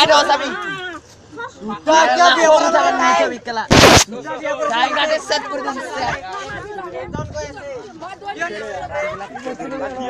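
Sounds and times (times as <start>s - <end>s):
people talking over one another: 0.0s - 10.0s
loud burst of noise: 3.7s - 4.1s.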